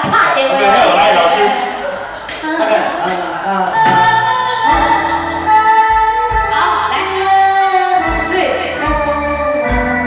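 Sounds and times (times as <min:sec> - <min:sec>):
slow song over sound system: 0:00.4 - 0:10.0
deep bass notes: 0:01.2 - 0:10.0.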